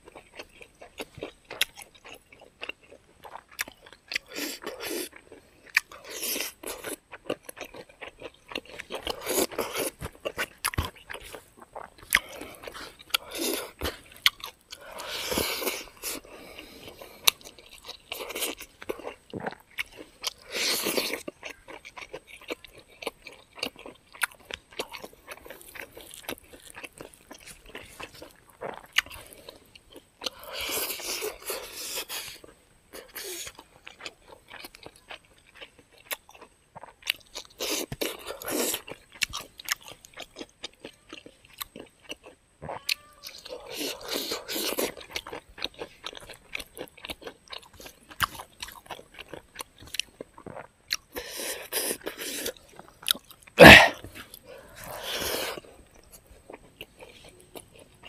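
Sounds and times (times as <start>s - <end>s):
close chewing with crunches: 0.0s - 58.0s.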